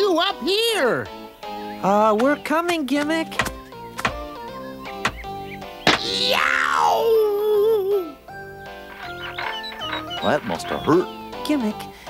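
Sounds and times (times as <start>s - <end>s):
light background music: 0.0s - 12.0s
man yelling in pain: 6.0s - 7.4s.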